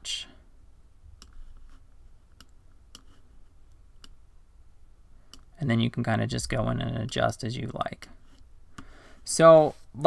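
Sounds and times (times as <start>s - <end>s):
faint low hum: 0.0s - 10.0s
computer mouse clicking: 2.3s - 4.2s.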